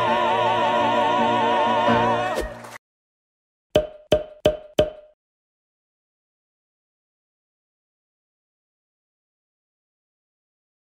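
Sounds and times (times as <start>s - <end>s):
wood-block-like knocks: 3.8s - 5.2s.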